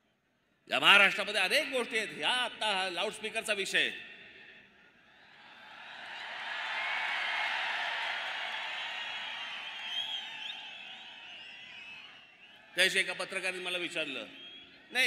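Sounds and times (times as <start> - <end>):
large crowd cheering: 5.3 - 13.8
whistles: 8.7 - 12.8, 14.2 - 14.9.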